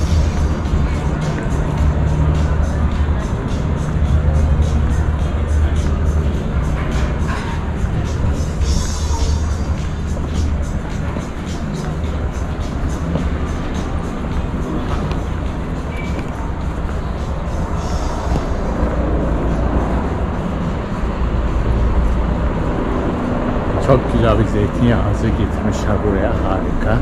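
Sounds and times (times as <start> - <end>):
faint music: 0.0 - 27.0
indistinct voices: 0.0 - 27.0
low rumble: 0.0 - 27.0
footsteps on stone paving: 14.8 - 17.0.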